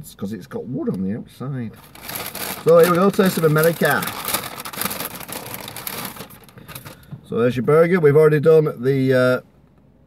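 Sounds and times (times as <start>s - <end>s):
paper bag rustling: 1.8s - 7.0s.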